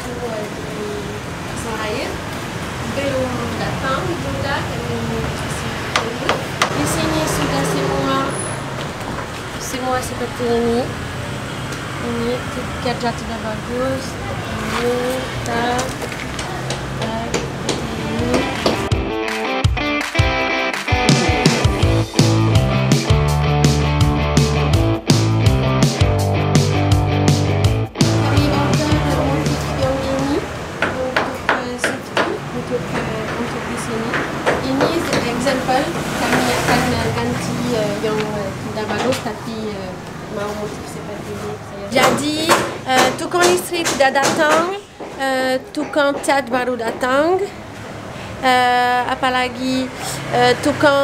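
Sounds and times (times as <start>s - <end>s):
voices: 0.0s - 18.9s, 28.0s - 51.0s
vehicle engine running: 4.4s - 10.9s
sharp knocks: 30.8s - 36.9s, 42.0s - 45.2s.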